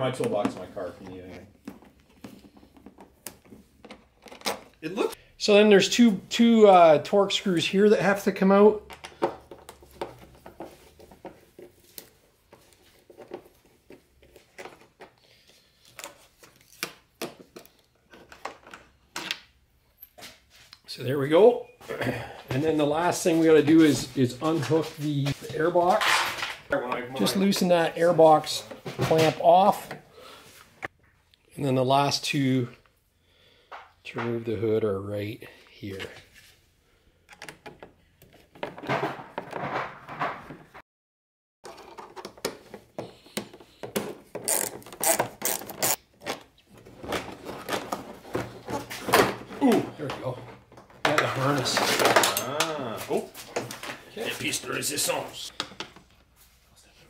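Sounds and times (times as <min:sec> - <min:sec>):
plastic panel parts handled: 0:41.6 - 0:52.7.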